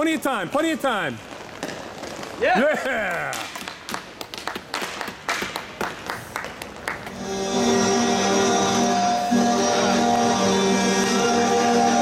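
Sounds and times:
hands clapping: 2.8s - 7.2s.

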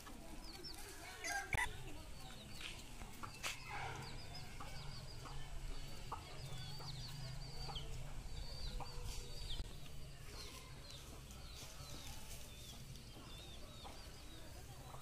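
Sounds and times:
chickens clucking: 0.0s - 15.0s
chicks cheeping: 0.0s - 15.0s.

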